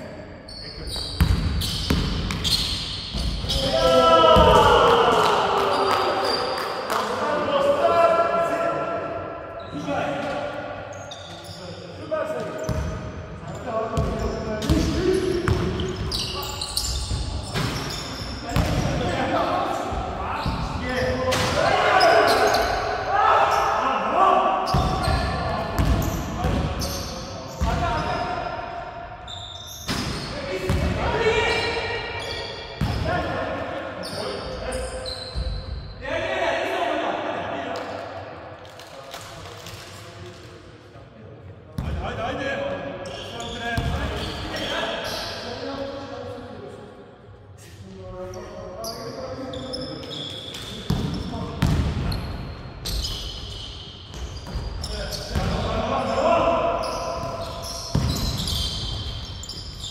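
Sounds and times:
players calling out: 3.4 - 9.0.

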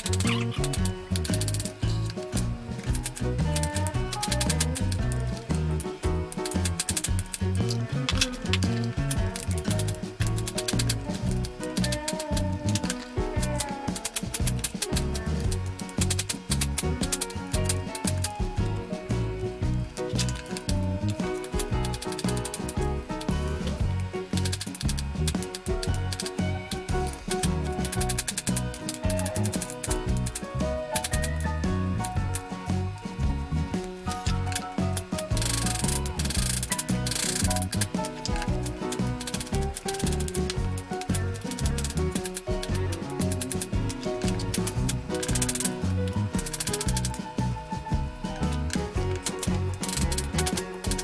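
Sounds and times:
background music with steady beat: 0.0 - 51.0.

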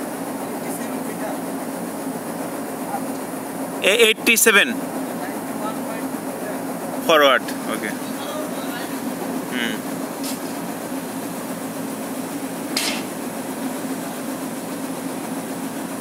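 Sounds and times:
ship machinery droning: 0.0 - 16.0
person calling out: 9.5 - 9.8.

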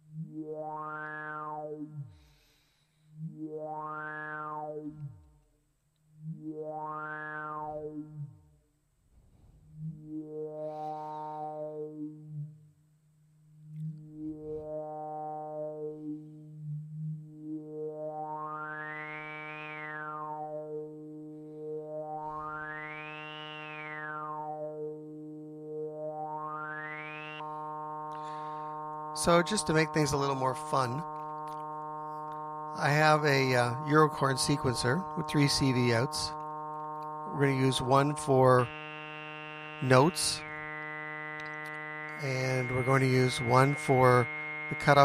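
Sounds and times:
synth tone with filter sweeps: 0.0 - 45.0.

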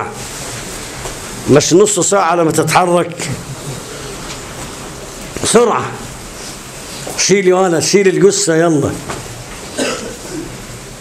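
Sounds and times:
room background noise: 0.0 - 11.0.

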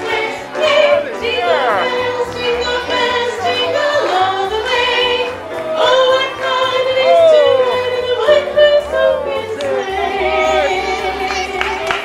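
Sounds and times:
person singing: 0.0 - 5.1.

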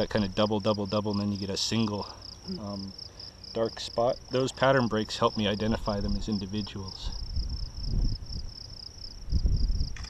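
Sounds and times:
insects chirping: 0.0 - 10.0
low rumble on microphone: 5.4 - 10.0.

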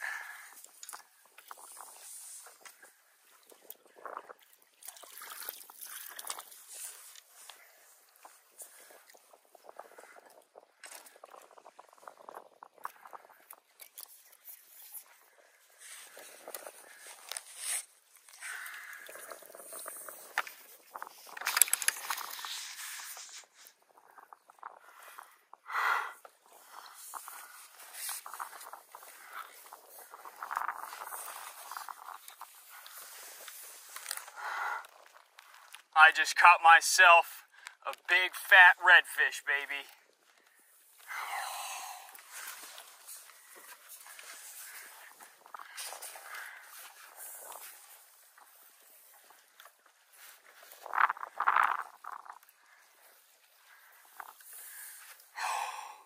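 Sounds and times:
water splashing and sloshing: 0.0 - 36.0, 39.9 - 55.8.

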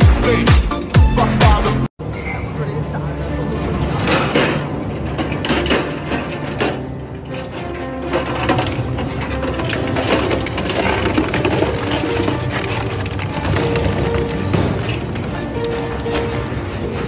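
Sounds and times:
background music: 0.0 - 1.9, 3.4 - 17.0
metal crunching and cracking: 3.4 - 17.0
shredder tearing metal frame: 3.8 - 17.0.

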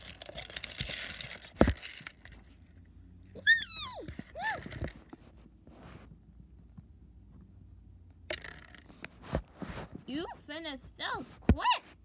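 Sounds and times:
popcorn rattling in plastic bowl: 0.0 - 2.4
high-pitched voice calling: 3.4 - 4.7.

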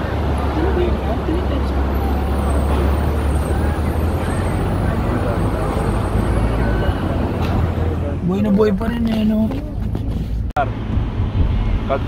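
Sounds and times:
car rumbling in traffic: 0.0 - 12.0.

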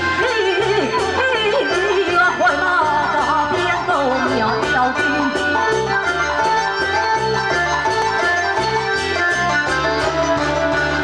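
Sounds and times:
amplified instrumental accompaniment: 0.0 - 11.0.

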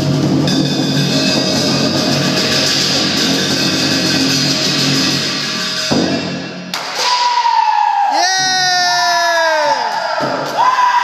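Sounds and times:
cymbals and drum crashing: 0.0 - 7.6.

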